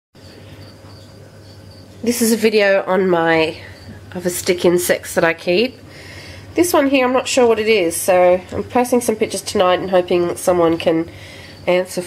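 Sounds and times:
insect trilling: 0:00.2 - 0:02.5
low steady hum: 0:00.2 - 0:12.0.

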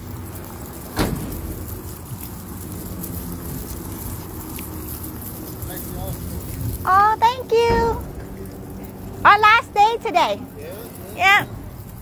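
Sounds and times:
steady low rumble: 0:00.0 - 0:10.6.

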